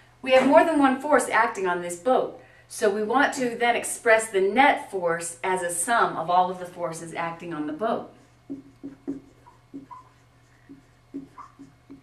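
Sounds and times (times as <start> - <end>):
marker writing on whiteboard: 8.2 - 12.0
marker squeaks: 8.5 - 12.0.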